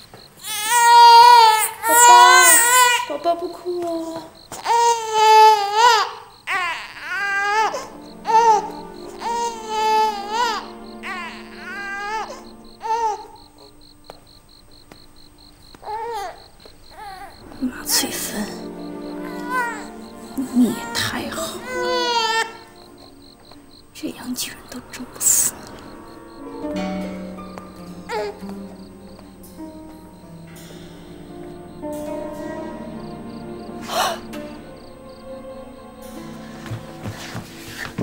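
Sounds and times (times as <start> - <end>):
crickets chirping: 0.0 - 38.0
low sustained background score: 0.0 - 38.0
infant crying: 0.4 - 3.3, 4.5 - 13.7, 15.8 - 17.7, 18.4 - 23.3, 28.0 - 28.5, 33.8 - 34.4
low background music: 7.4 - 38.0.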